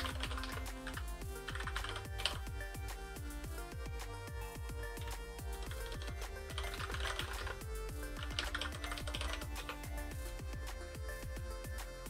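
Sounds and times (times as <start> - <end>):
typing on computer keyboard: 0.0 - 2.5, 5.0 - 9.9
background music with steady beat: 0.0 - 12.0.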